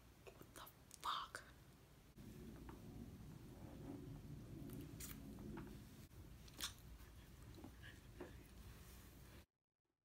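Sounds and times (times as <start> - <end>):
woman whispering: 0.2 - 1.6
soft lip clicks: 6.4 - 6.9.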